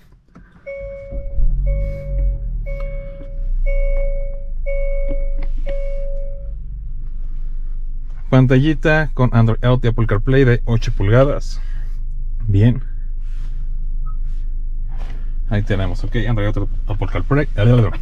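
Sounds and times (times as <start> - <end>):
car engine starting and idling: 0.0 - 18.0.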